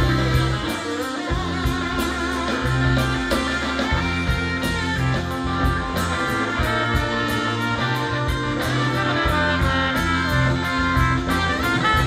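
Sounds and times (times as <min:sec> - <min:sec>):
drum beat: 0:00.0 - 0:12.0
electric guitar: 0:00.0 - 0:12.0
trumpet: 0:00.0 - 0:12.0.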